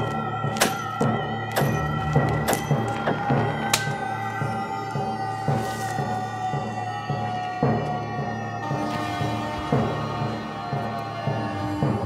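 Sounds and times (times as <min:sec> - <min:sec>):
layered drones: 0:00.0 - 0:12.0.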